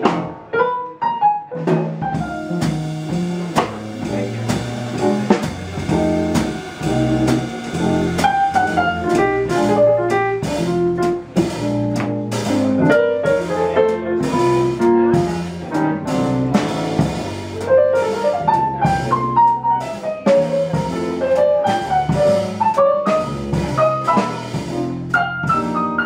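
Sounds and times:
drum kit with ride cymbals: 0.0 - 0.5, 1.6 - 26.0
plucked upright double bass: 0.0 - 0.5, 1.6 - 26.0
acoustic piano: 0.0 - 26.0.

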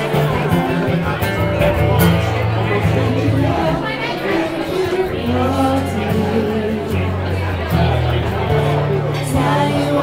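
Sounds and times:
acoustic guitar strumming: 0.0 - 10.0
room chatter: 0.0 - 10.0.

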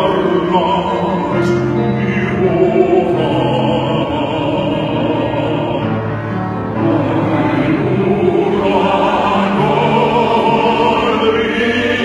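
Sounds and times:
man singing into microphone: 0.0 - 6.0
choir singing held notes: 0.0 - 12.0.

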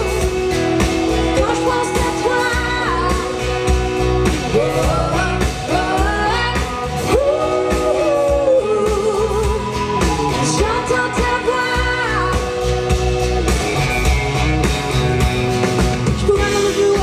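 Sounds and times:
pop-rock band playing: 0.0 - 17.0
woman singing: 1.0 - 12.9, 16.0 - 17.0.

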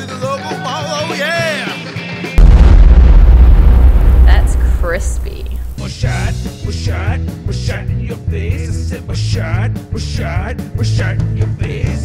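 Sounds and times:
deep explosion boom: 2.4 - 6.4
rock music with singing: 5.2 - 12.0.

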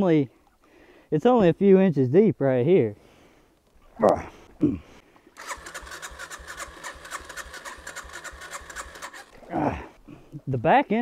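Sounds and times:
electric starter cranking engine: 5.4 - 9.5.

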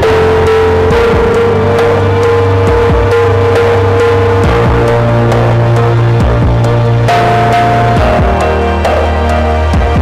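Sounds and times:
instrumental music with steady beat: 0.0 - 10.0.

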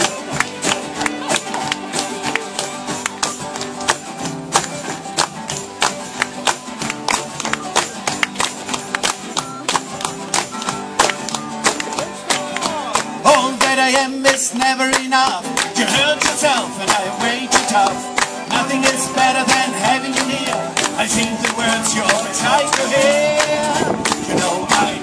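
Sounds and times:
acoustic guitar strumming: 0.0 - 25.0
folk band playing instrumental: 0.0 - 25.0.

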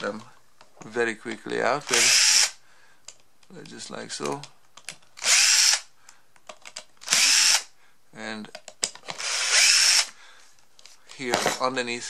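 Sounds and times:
cordless drill whining: 1.8 - 2.6, 5.2 - 5.9, 7.0 - 7.7, 9.1 - 10.2.

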